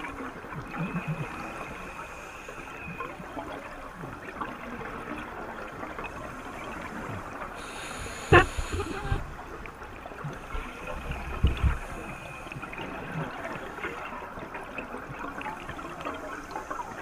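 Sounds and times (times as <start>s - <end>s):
underwater bubbling and gurgling: 0.0s - 17.0s.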